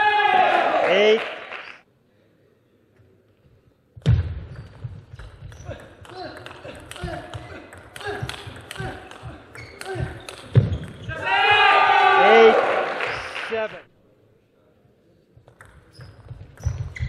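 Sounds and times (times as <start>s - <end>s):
shoes squeaking on floor: 9.3s - 11.2s, 15.8s - 17.0s.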